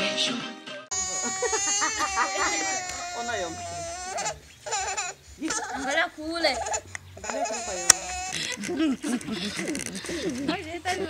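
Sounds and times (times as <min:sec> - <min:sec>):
baby crying: 0:00.9 - 0:08.7
adults talking: 0:00.9 - 0:11.0.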